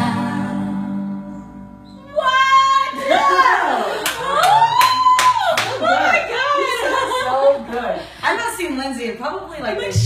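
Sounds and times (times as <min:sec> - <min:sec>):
hands clapping a beat: 0:04.0 - 0:05.8.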